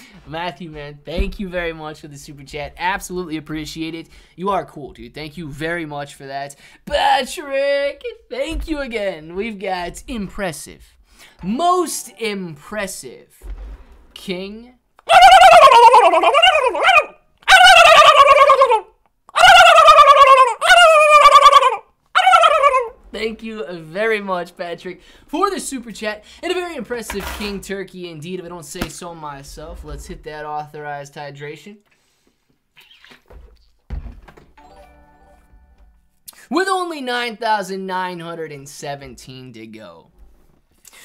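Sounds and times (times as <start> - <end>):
man imitating turkey gobbling: 15.0 - 23.0
person swallowing: 32.8 - 33.8
alert jingle of held tones: 34.6 - 36.0.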